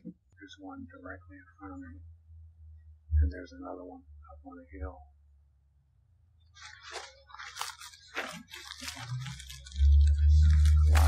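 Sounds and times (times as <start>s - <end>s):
dry leaves crunching: 6.6s - 11.0s.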